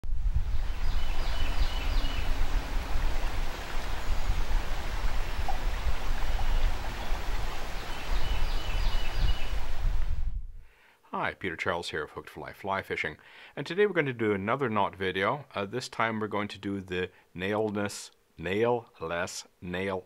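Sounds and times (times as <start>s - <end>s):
river water rushing: 0.4s - 9.9s.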